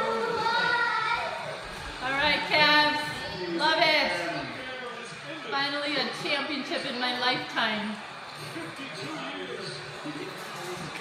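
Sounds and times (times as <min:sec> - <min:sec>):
high-pitched voices cheering: 0:00.0 - 0:01.9.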